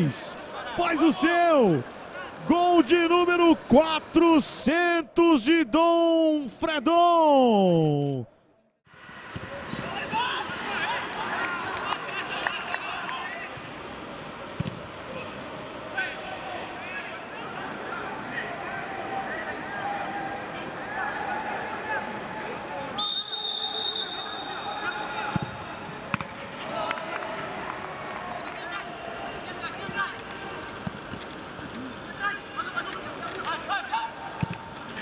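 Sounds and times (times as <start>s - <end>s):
players shouting: 0.0s - 8.2s
referee's whistle blast: 23.0s - 25.4s.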